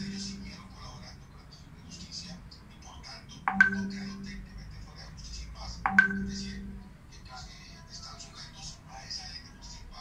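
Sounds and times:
notification chime: 0.0 - 0.7, 3.5 - 4.4, 5.9 - 6.9.

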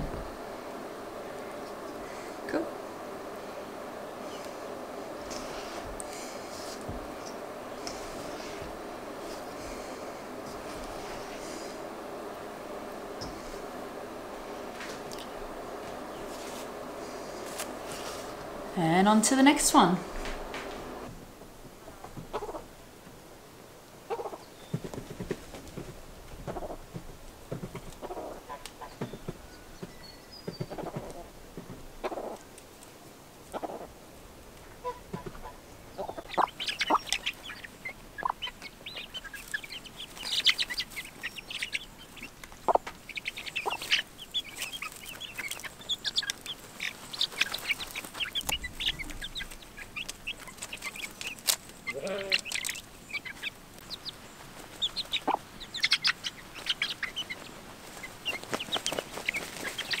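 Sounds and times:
hens clucking: 0.0 - 21.1, 22.0 - 22.8, 24.1 - 25.8, 26.4 - 29.1, 30.6 - 60.0
chicks cheeping: 3.0 - 21.1, 22.3 - 22.7, 24.1 - 25.6, 26.4 - 26.9, 27.6 - 31.3, 32.0 - 32.4, 33.5 - 33.9, 34.7 - 60.0
scratchy rustles in loose dirt: 13.2 - 18.6, 36.4 - 60.0.

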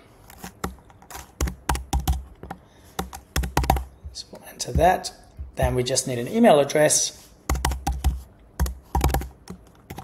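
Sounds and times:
typing on computer keyboard: 0.6 - 3.9, 7.5 - 10.0.

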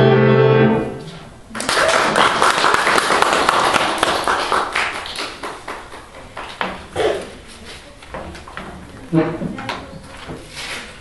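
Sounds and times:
audience clapping: 1.5 - 6.5.

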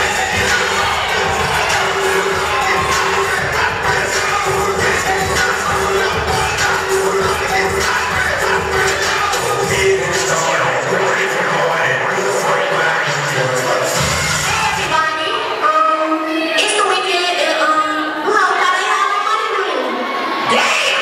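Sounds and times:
music: 0.0 - 18.8
audience cheering and shouting: 0.0 - 21.0.

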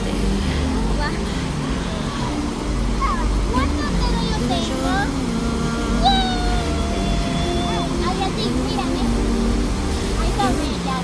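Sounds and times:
high voice singing: 0.0 - 11.0
music: 0.0 - 11.0.

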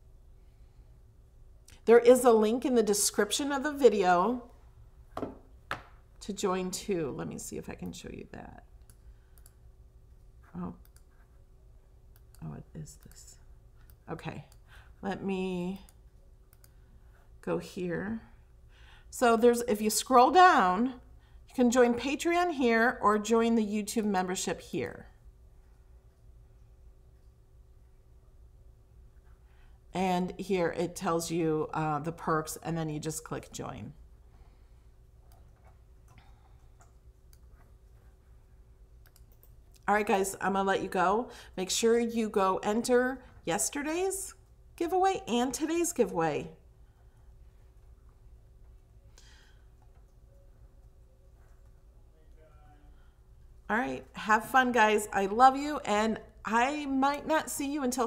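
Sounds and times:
steady low hum: 0.0 - 58.0
woman speaking: 1.8 - 4.5, 6.2 - 8.6, 10.5 - 10.8, 12.4 - 13.4, 14.1 - 15.9, 19.2 - 25.1, 30.0 - 34.0, 39.8 - 46.6, 53.7 - 58.0
computer mouse clicks: 8.8 - 9.6, 10.8 - 11.2, 15.8 - 16.8, 39.0 - 39.8.

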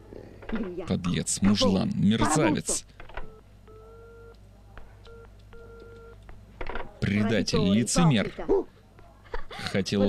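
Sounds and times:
telephone dial tone beeps: 3.2 - 4.4, 5.1 - 6.2.

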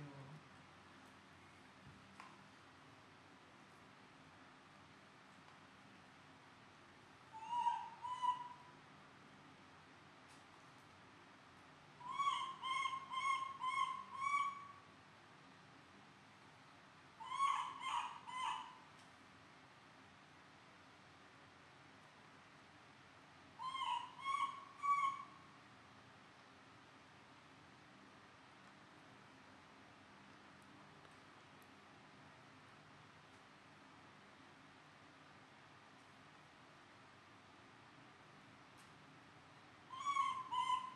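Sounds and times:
baby monkey calling: 7.4 - 8.7, 12.0 - 14.9, 17.2 - 18.8, 23.6 - 25.4, 39.9 - 40.9
short pitched animal calls: 17.2 - 18.8, 39.9 - 40.9.

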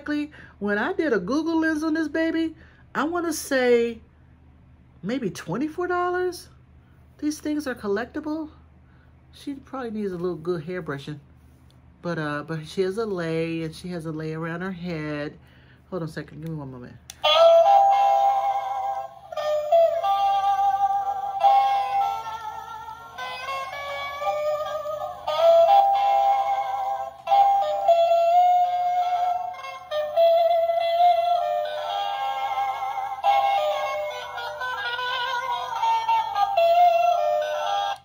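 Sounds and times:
toy playing tinny tune: 17.1 - 38.0.

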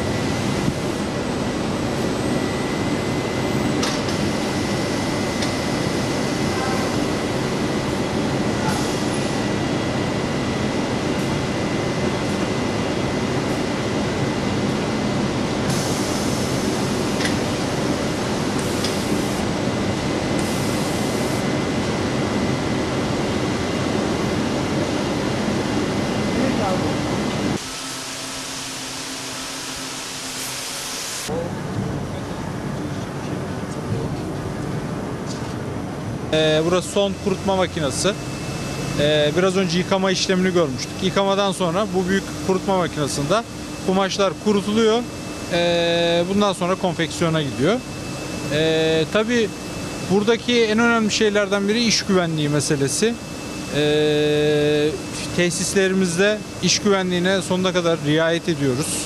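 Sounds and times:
thin high whine: 0.0 - 31.6, 36.3 - 59.0
factory machinery drone: 0.0 - 59.0
quieter machine noise: 0.0 - 59.0.

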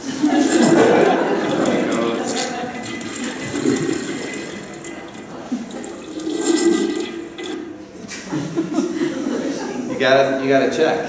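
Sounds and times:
toilet flush: 0.0 - 7.8.

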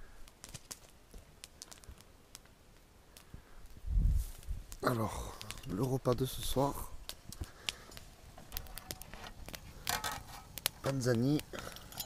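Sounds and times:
campfire crackling and popping: 0.0 - 12.0.

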